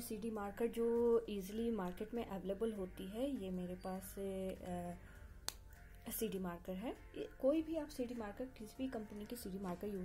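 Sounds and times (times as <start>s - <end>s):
woman's voice: 0.0s - 5.1s, 6.0s - 10.0s.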